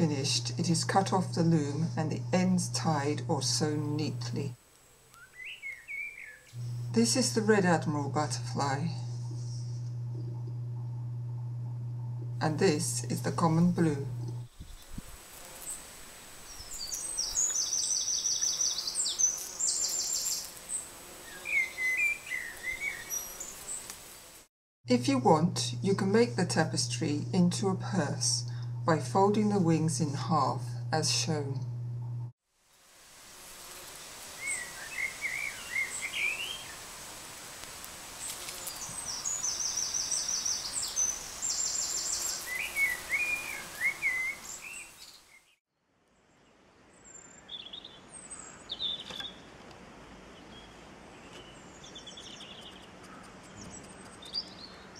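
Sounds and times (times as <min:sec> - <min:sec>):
steady background hiss: 0:00.0 - 0:09.6, 0:12.4 - 0:25.2, 0:32.6 - 0:45.4
outdoor background noise: 0:00.0 - 0:54.9
birds singing: 0:05.1 - 0:06.5, 0:16.5 - 0:20.5, 0:21.3 - 0:23.8, 0:34.4 - 0:36.8, 0:38.7 - 0:45.6, 0:46.9 - 0:49.5, 0:50.4 - 0:54.9
bird chirps: 0:05.2 - 0:06.5, 0:38.8 - 0:45.4.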